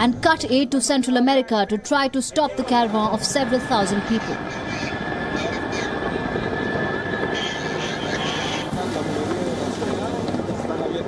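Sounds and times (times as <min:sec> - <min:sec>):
crowd voices: 0:00.9 - 0:11.0.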